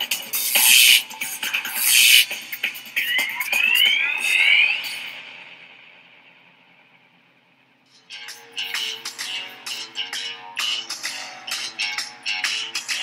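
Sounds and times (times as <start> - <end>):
loud burst of noise: 0.5 - 1.0, 1.7 - 6.1
rising whistle-like sweep: 0.5 - 1.1, 1.7 - 6.0.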